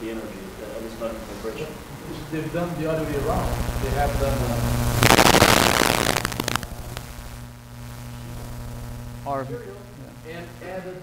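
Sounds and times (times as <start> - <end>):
low electrical hum: 0.0 - 11.0
crackling rustling noise: 3.3 - 9.3.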